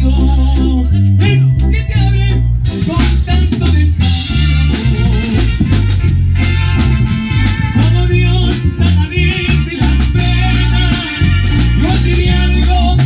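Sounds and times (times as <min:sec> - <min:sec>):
electric bass: 0:00.0 - 0:13.0
keyboard: 0:00.0 - 0:13.0
drum kit hits: 0:02.7 - 0:13.0.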